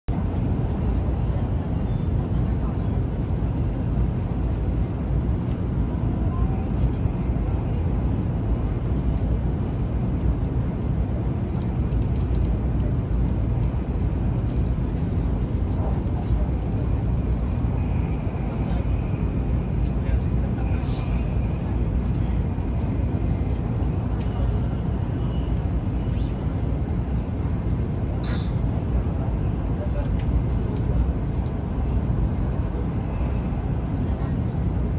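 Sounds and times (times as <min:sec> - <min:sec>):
train cabin rumble: 0:00.1 - 0:34.9.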